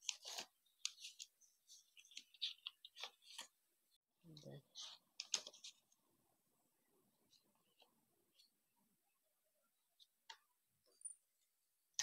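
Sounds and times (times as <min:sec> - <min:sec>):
paper sheets rustling and crackling: 0:00.0 - 0:03.6.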